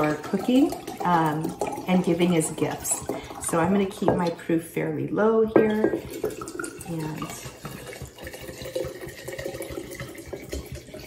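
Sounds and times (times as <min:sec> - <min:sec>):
liquid pouring into glass jar: 0:00.0 - 0:04.6, 0:05.5 - 0:11.0.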